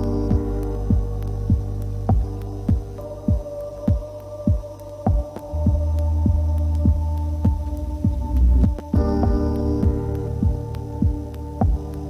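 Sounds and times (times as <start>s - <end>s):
electronic soundtrack music: 0.0s - 12.0s
steady low drone: 0.0s - 12.0s
low pulsing thump: 0.3s - 11.9s.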